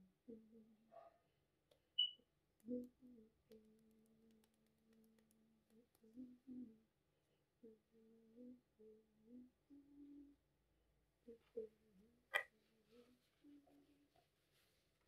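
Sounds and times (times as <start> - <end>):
person humming faintly: 0.0 - 0.9, 2.6 - 6.9, 7.6 - 10.4, 11.2 - 14.3
high-pitched chirp: 2.0 - 2.2.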